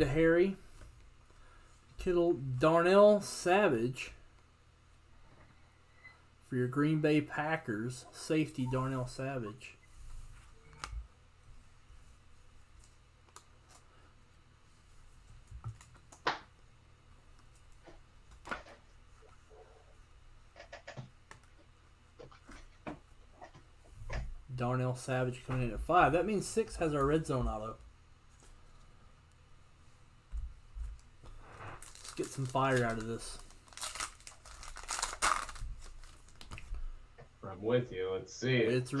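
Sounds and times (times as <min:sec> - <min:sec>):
foil wrapper crinkling: 0:31.7 - 0:36.7.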